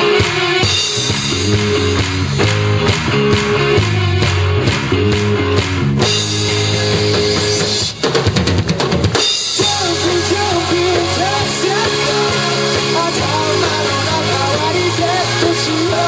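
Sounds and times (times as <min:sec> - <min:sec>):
bass guitar: 0:00.0 - 0:16.0
distorted electric guitars: 0:00.0 - 0:16.0
drum kit beat: 0:00.0 - 0:16.0.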